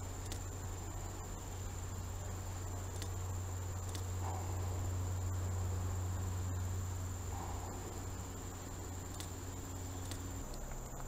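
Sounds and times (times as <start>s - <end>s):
high-pitched insect chorus: 0.0s - 11.0s
low steady hum: 0.0s - 11.0s
faint clicks: 0.2s - 0.5s, 2.9s - 3.2s, 3.8s - 4.6s, 9.0s - 9.4s, 10.0s - 11.0s.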